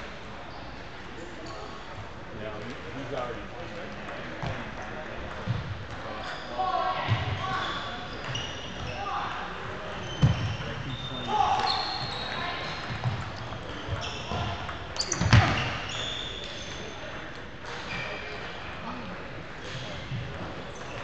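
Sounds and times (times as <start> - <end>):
shoe squeaks on wooden floor: 10.0 - 12.6, 13.6 - 16.9.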